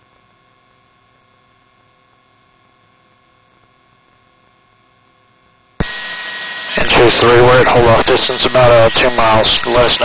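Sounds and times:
faint hum: 0.0s - 10.0s
radio static: 5.8s - 10.0s
man's voice over radio: 6.7s - 10.0s.

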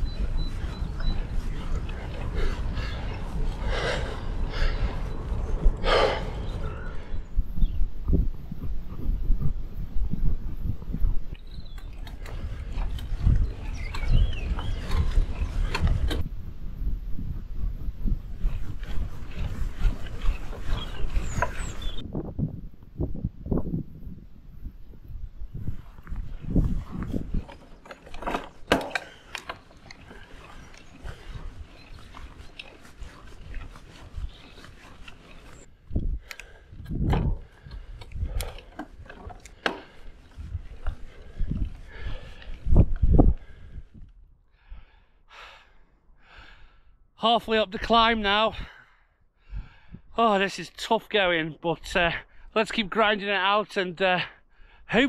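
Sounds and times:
cyclist breathing hard: 0.0s - 22.1s, 28.3s - 47.2s, 48.6s - 50.1s, 54.3s - 54.9s
wind rushing over microphone: 0.0s - 27.9s, 29.8s - 44.9s, 47.8s - 50.2s.

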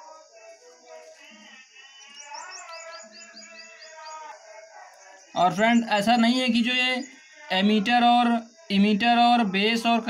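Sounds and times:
small bird chirping: 1.8s - 6.2s.

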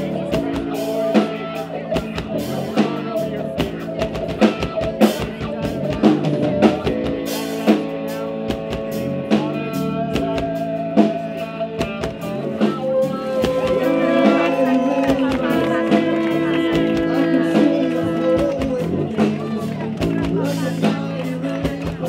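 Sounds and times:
worship band music: 0.0s - 22.0s.

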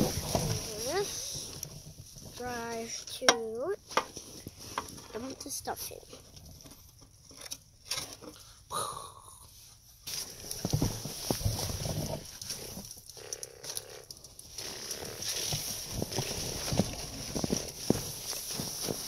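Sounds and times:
snow crunching and scraping: 0.0s - 3.2s, 10.1s - 19.0s.

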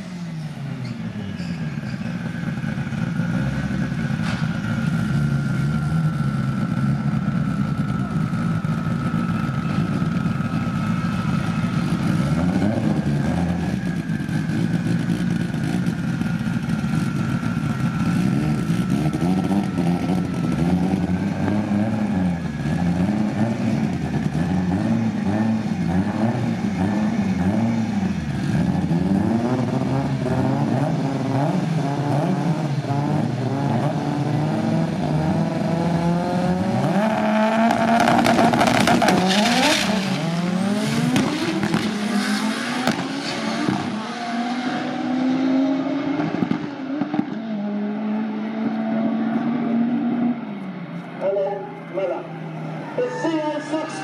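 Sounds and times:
drag racing engines revving: 0.0s - 54.0s
cars launching at full throttle: 0.3s - 54.0s.

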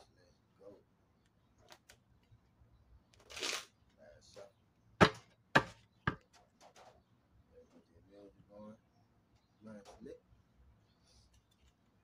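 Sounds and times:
sharp knocks: 5.0s - 6.9s.

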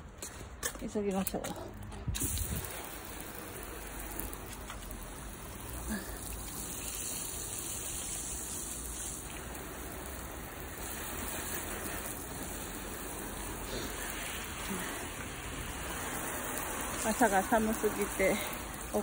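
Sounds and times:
hose spray hissing on car: 2.1s - 19.0s.

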